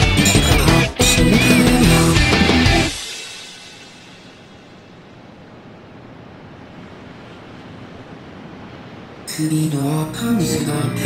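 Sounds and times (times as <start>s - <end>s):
even wash of noise: 0.0s - 11.0s.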